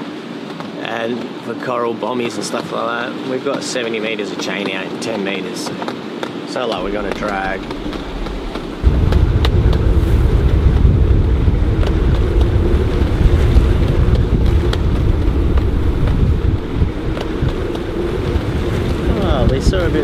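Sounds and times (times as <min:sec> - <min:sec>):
wind over choppy water: 0:00.0 - 0:20.0
wind buffeting microphone: 0:02.2 - 0:20.0.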